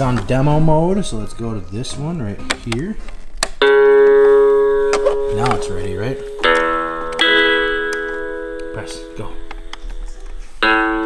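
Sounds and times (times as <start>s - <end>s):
toy guitar chords: 0.0s - 11.0s.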